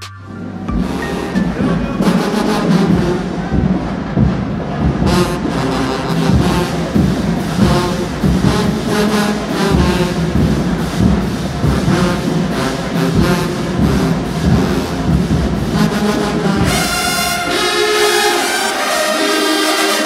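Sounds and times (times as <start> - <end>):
steady drum beat: 0.0 - 18.0
marching band brass playing: 0.0 - 20.0.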